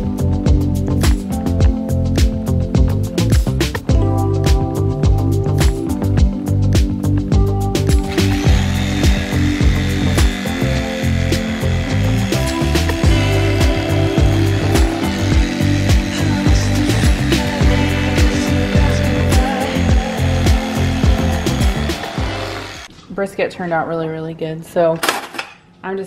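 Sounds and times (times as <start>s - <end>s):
music with steady beat: 0.0s - 22.9s
electric carving knife buzzing: 8.0s - 22.9s.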